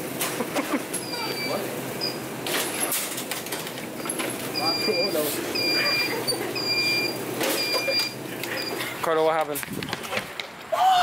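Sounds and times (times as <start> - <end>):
short warning beeps: 4.6 - 8.8.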